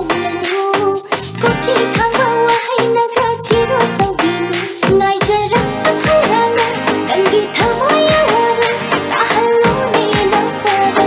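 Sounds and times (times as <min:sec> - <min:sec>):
backing track with steady beat: 0:00.0 - 0:11.0
girl singing: 0:00.0 - 0:11.0.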